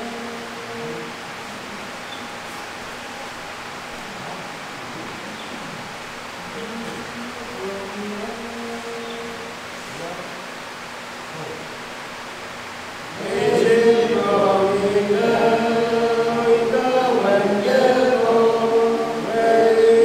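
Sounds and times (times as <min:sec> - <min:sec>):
men singing unaccompanied: 0:06.5 - 0:09.6, 0:13.1 - 0:20.0.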